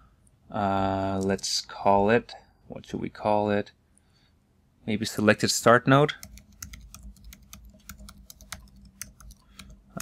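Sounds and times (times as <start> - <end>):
typing on computer keyboard: 6.2 - 10.0.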